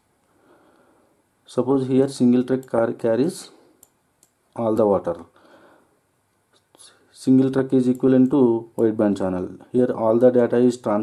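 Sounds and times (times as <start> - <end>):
soft breathing: 0.3 - 1.3, 5.3 - 7.2
man speaking: 1.5 - 3.6, 4.6 - 5.4, 6.8 - 11.0.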